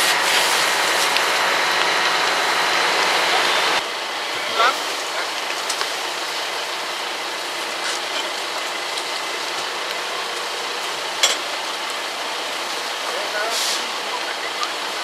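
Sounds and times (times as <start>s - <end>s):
fire rushing: 0.0s - 15.0s
sharp cracks of fire: 0.0s - 15.0s.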